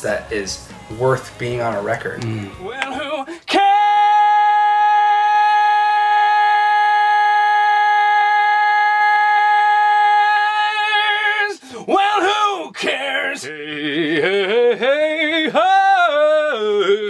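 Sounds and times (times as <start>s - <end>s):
man singing long high note: 2.2s - 17.0s.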